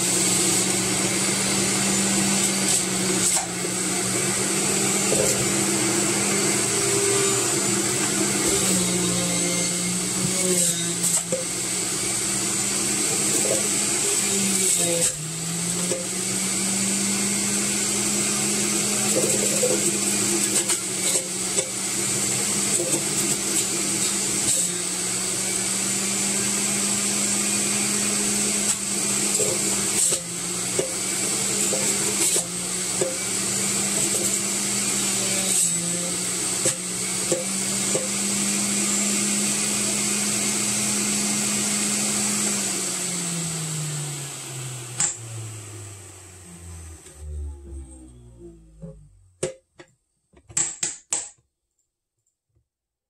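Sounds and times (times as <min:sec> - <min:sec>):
juicer motor running: 0:00.0 - 0:49.2.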